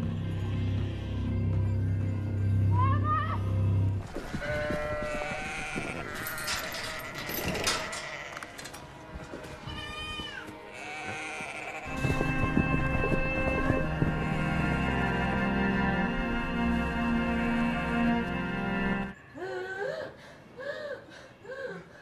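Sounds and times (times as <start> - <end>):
low dark film score: 0.0 - 9.6, 10.4 - 22.0
livestock bleating: 4.2 - 8.7, 9.7 - 12.0.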